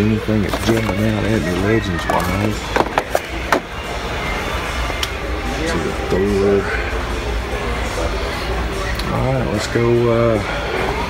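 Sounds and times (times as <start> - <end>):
background music: 0.0 - 11.0
store hum: 0.0 - 11.0.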